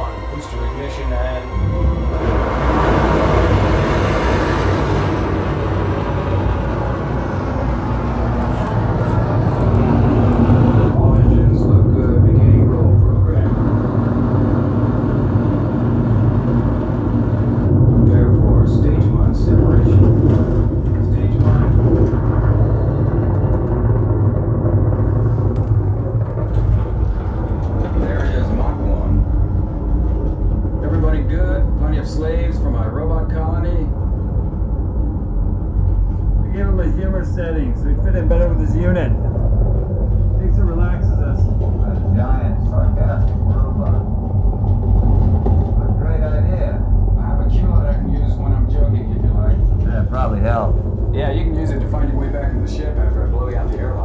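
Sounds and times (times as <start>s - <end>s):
deep steady rumble: 0.0s - 54.0s
rush of noise: 0.0s - 54.0s.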